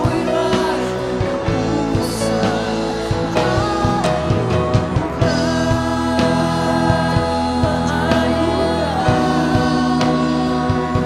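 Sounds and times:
band accompaniment: 0.0 - 11.0
man singing: 0.0 - 11.0
steady drum beat: 0.0 - 11.0
woman singing: 0.0 - 11.0.

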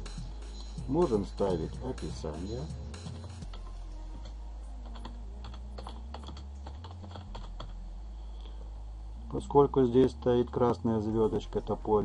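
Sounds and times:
steady low hum: 0.0 - 12.0
computer keyboard typing: 2.4 - 7.8.

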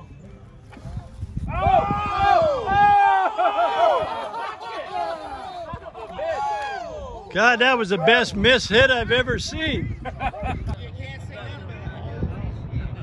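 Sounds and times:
men laughing and calling out: 1.5 - 8.6, 9.4 - 11.0.

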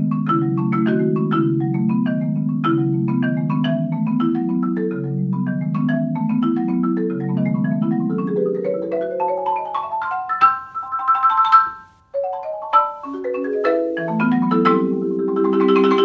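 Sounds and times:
marimba played with mallets: 0.0 - 16.0.

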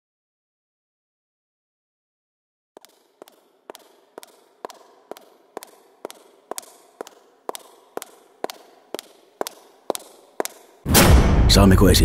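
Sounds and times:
hard-soled footsteps on hard floor: 2.8 - 10.9.

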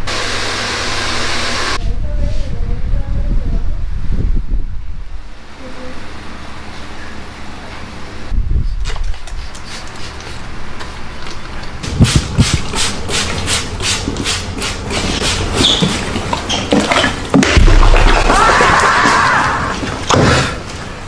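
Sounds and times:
spray bottle squirting water: 8.8 - 16.8.

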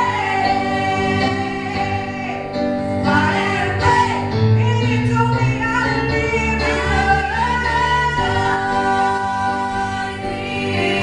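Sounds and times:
women singing gospel: 0.0 - 11.0.

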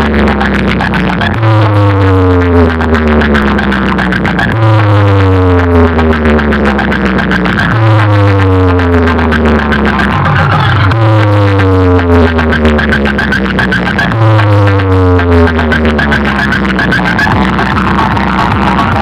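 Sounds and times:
electronic dance music: 0.0 - 19.0
falling synth sweep: 0.0 - 19.0.

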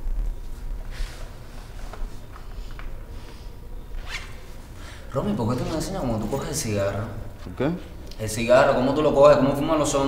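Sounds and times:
low room hum: 0.0 - 10.0
zipper pulled: 4.0 - 4.5.

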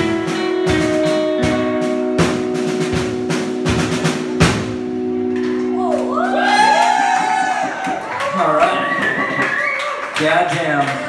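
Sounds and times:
drum and cymbal hits: 0.0 - 5.0
electric guitar chord ringing: 0.0 - 6.6
voices whooping: 5.8 - 10.2.

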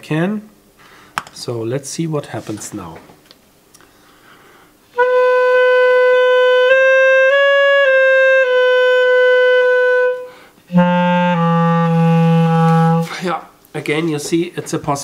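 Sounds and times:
clarinet notes: 4.9 - 13.4.

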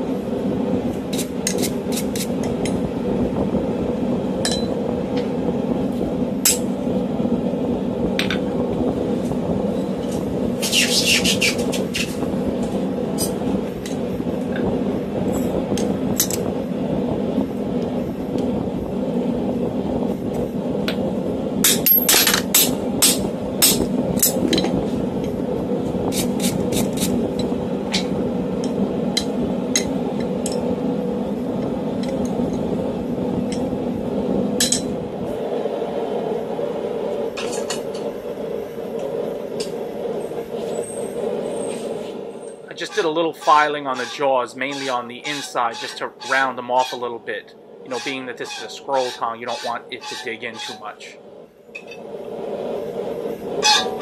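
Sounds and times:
steady hum: 0.0 - 54.0.

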